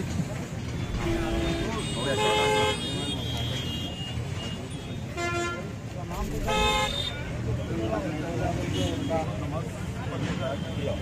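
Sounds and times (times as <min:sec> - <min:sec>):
crowd talking: 0:00.0 - 0:11.0
vehicle horns honking: 0:00.8 - 0:05.7, 0:06.4 - 0:07.3.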